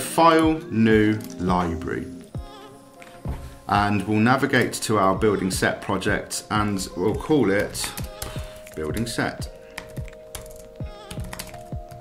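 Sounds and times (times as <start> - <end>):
background music with held notes: 0.0 - 12.0
typing on computer keyboard: 9.7 - 12.0.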